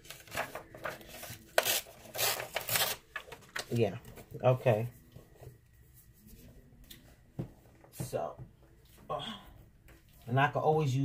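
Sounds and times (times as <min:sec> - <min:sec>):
paper ripping: 0:00.0 - 0:03.7.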